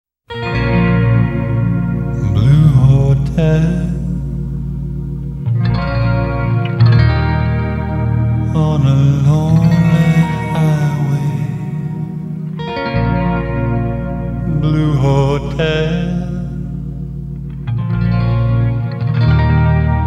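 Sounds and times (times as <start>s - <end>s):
low held bass: 0.3s - 20.0s
slow electric guitar chords: 0.3s - 20.0s.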